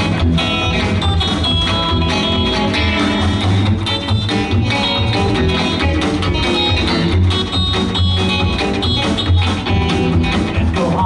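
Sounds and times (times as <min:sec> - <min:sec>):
drums: 0:00.0 - 0:11.0
electric guitar playing lead: 0:00.0 - 0:11.0
upright bass: 0:00.0 - 0:11.0.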